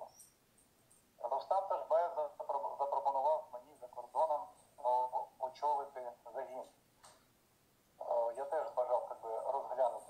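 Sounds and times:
man talking in telephone-like voice: 1.2s - 6.8s, 8.0s - 10.0s.

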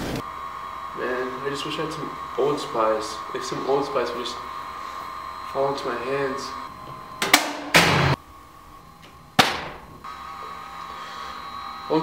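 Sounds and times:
faint electrical hum: 0.0s - 12.0s
sharp hit: 7.2s - 8.2s.

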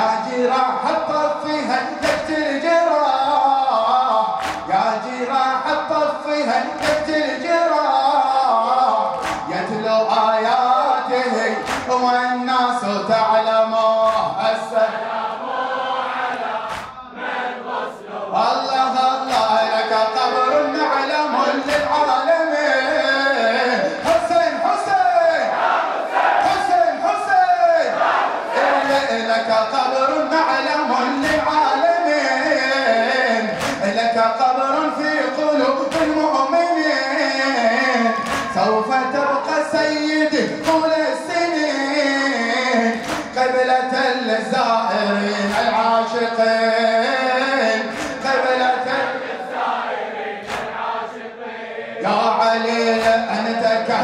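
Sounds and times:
men chanting a mournful lament: 0.0s - 54.0s.

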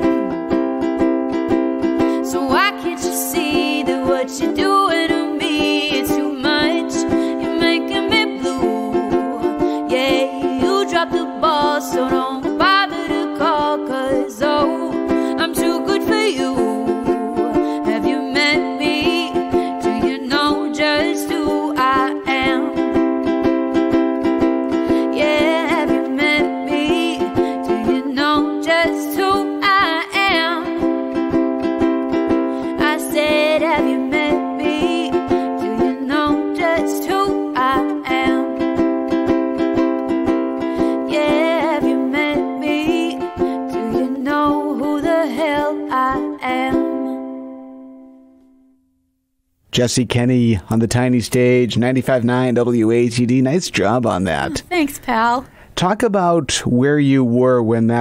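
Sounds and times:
ukulele strumming: 0.0s - 48.6s, 50.7s - 55.4s
woman singing: 2.0s - 23.0s, 24.7s - 31.2s, 32.6s - 38.9s, 40.6s - 47.2s, 54.5s - 55.4s.

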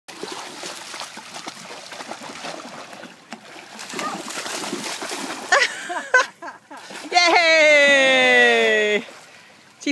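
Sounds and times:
dog splashing in water: 0.1s - 5.6s
person exclaiming: 7.1s - 9.0s.

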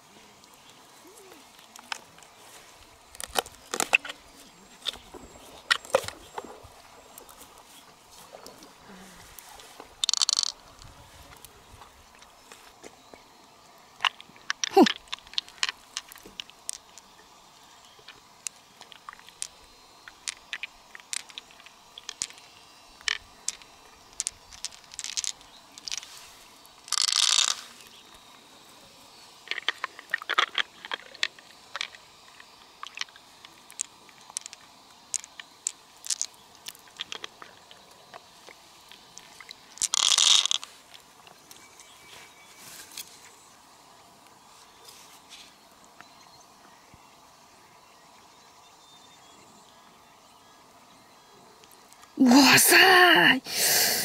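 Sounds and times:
metal beads clicking together: 10.0s - 10.6s, 23.0s - 26.0s, 26.9s - 27.6s, 33.7s - 37.2s, 39.8s - 40.7s.

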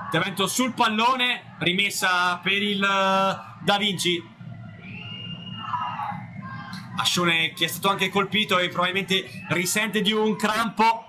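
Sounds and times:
crowd rumble: 0.0s - 9.6s
distant shouting and chanting: 0.0s - 11.0s.

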